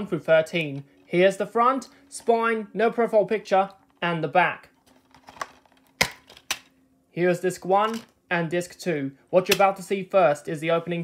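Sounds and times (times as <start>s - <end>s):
plastic case snapping open: 5.0s - 6.7s, 9.5s - 9.7s.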